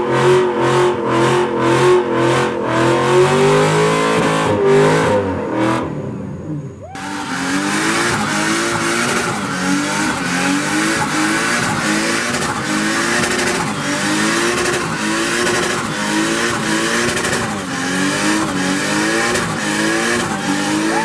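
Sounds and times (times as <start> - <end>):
car engine revving: 0.0 - 21.0
tyres squealing on pavement: 19.4 - 21.0.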